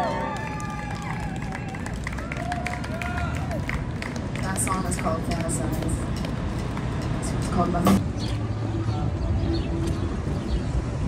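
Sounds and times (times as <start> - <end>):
city street traffic hum: 0.0 - 11.0.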